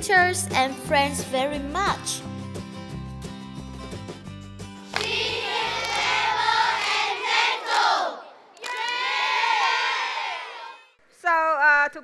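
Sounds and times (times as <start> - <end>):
children shouting cheers: 7.5 - 10.9.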